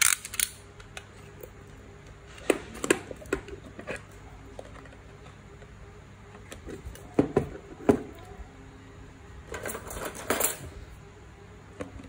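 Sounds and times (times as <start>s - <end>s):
metal tools clinking and rattling: 9.5s - 10.7s.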